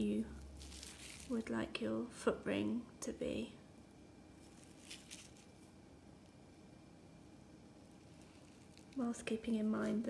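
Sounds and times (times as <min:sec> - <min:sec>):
faint scratchy sounds: 0:00.0 - 0:10.0.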